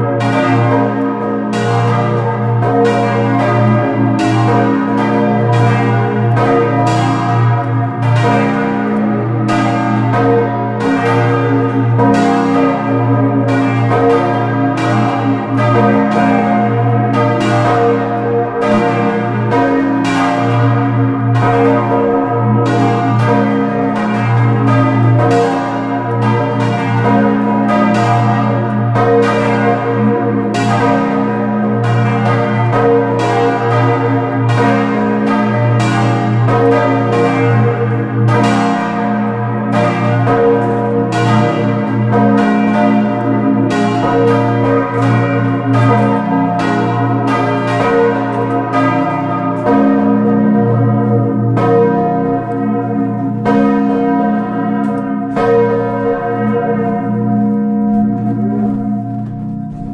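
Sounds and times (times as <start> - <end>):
large church bells pealing: 0.0 - 59.9.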